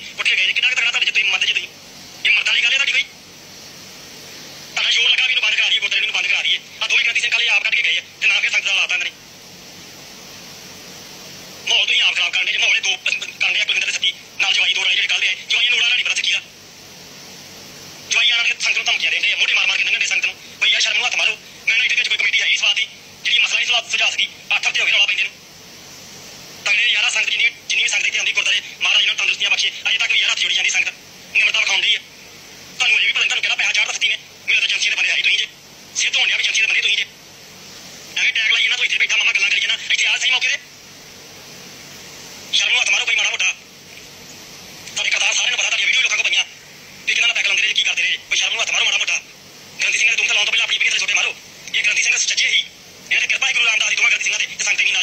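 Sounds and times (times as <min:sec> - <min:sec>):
person speaking over a telephone: 0:00.0 - 0:03.2, 0:04.8 - 0:09.2, 0:11.6 - 0:16.5, 0:18.1 - 0:25.4, 0:26.6 - 0:32.1, 0:32.8 - 0:37.2, 0:38.2 - 0:40.7, 0:42.5 - 0:44.1, 0:44.8 - 0:55.0.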